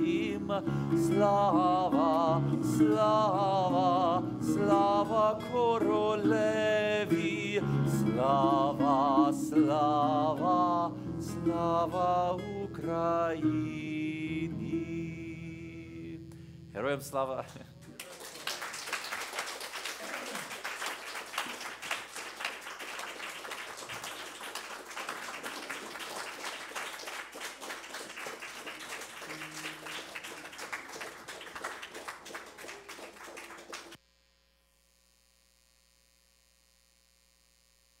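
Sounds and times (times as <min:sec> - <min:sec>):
audience applauding: 0:17.9 - 0:34.0.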